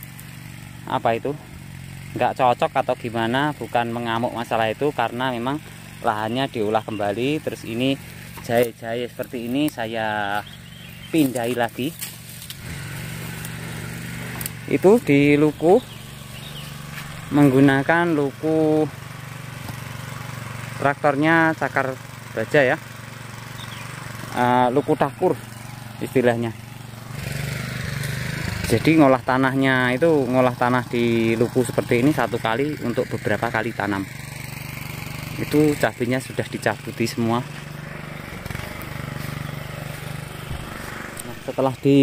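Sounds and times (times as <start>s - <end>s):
small engine humming: 0.0s - 42.0s.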